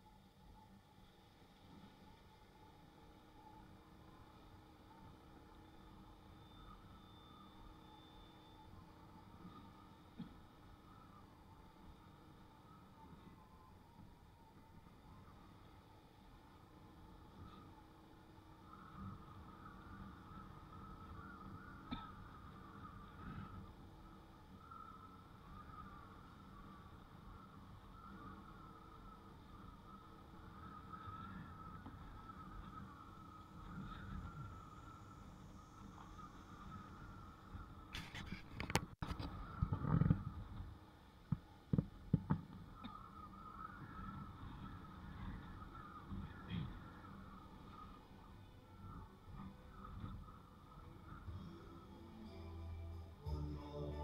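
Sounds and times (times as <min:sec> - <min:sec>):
faint motorbike rumble and whine: 0:00.0 - 0:54.0.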